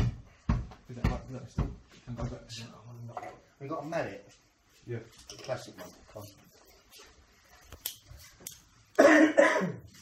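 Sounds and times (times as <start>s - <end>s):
person coughing: 9.0s - 10.0s.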